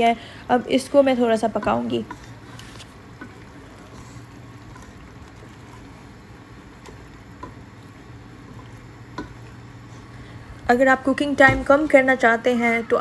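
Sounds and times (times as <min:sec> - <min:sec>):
gravy bubbling and sizzling: 0:00.0 - 0:13.0
wooden spoon knocking pot: 0:09.1 - 0:09.4.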